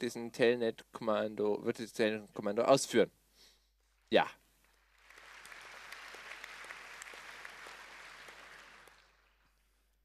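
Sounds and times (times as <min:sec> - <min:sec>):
audience applause: 0:04.6 - 0:10.0.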